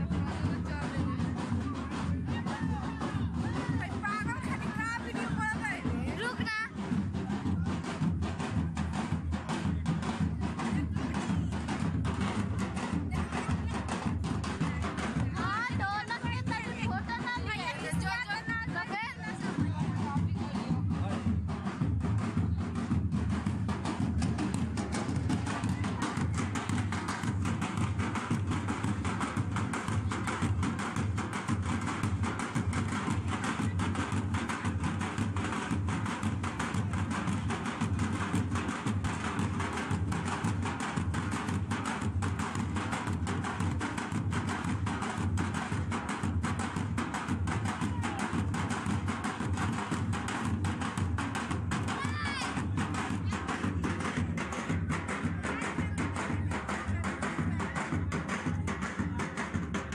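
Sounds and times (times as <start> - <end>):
hand drums playing fast rhythm: 0.0 - 59.9.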